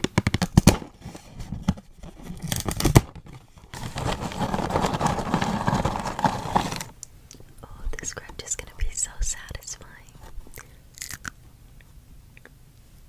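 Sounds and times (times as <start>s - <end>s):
plastic bag crinkling: 2.0s - 7.0s
cardboard box tearing: 2.1s - 6.9s
soft whispering: 7.5s - 10.8s.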